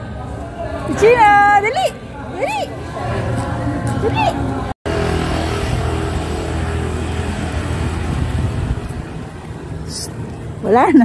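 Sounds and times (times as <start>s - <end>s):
vehicle engine running: 4.9s - 10.9s.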